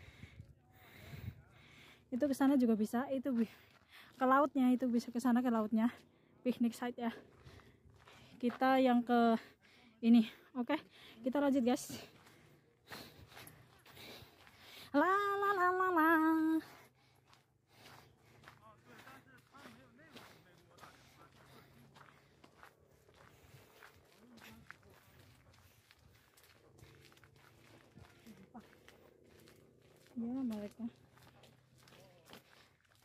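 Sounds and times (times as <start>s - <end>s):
footsteps on dirt trail: 0.0s - 9.5s, 10.1s - 33.0s.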